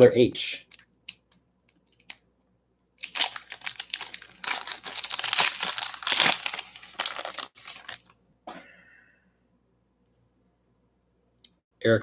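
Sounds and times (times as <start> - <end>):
foil wrapper crinkling: 3.0 - 8.1.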